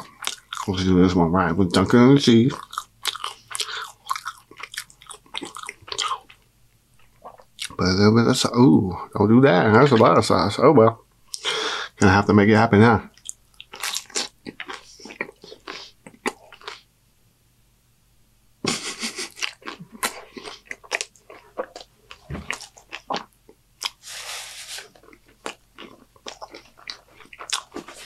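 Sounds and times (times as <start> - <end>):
wet crunchy biting and chewing: 2.4 - 6.4, 13.2 - 16.9, 19.0 - 28.0.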